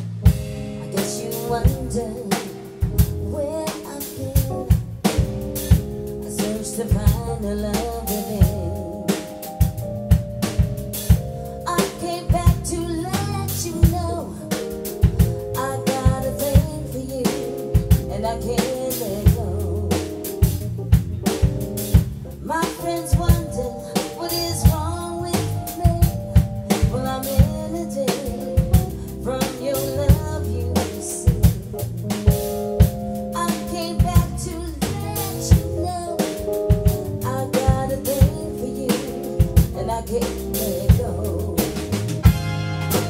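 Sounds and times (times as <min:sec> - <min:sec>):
drum kit beat: 0:00.0 - 0:43.0
electric bass guitar line: 0:00.0 - 0:43.0
keyboard chords: 0:00.0 - 0:43.0
woman singing: 0:00.8 - 0:04.8, 0:06.2 - 0:09.5, 0:11.5 - 0:20.5, 0:22.4 - 0:31.8, 0:33.3 - 0:42.0.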